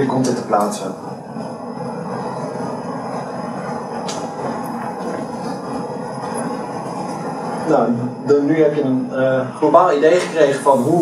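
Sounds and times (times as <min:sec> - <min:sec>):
low rumbling noise: 0:00.0 - 0:11.0.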